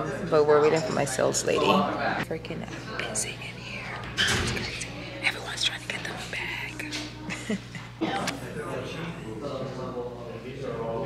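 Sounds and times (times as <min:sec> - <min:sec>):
woman whispering: 0:02.9 - 0:07.0.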